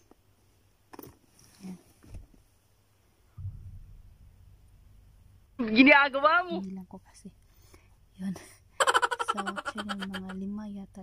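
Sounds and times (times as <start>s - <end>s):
low thump: 3.4s - 4.1s.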